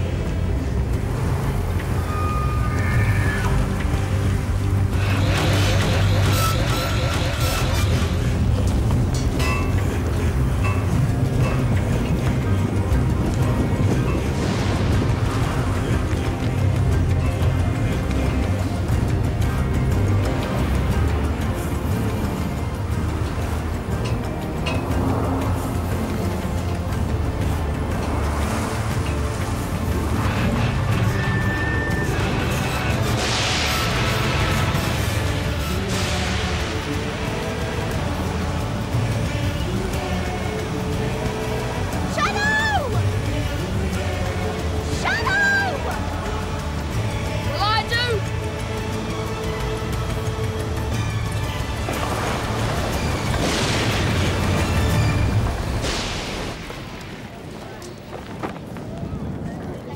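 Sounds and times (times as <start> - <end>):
storm wind gusts: 0.0 - 47.5, 50.5 - 59.9
dramatic background music: 0.0 - 57.4.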